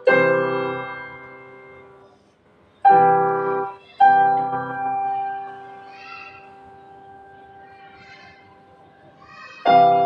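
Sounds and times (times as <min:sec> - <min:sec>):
keyboard piano chord: 0:00.0 - 0:02.1, 0:02.8 - 0:07.8.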